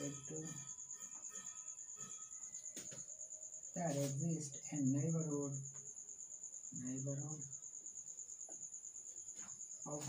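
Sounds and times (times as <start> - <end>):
high-pitched pulsing trill: 0.0 - 3.4.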